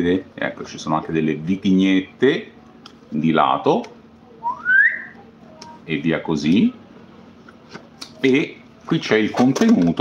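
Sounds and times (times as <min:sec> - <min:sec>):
short rising whistle: 0:04.4 - 0:05.1.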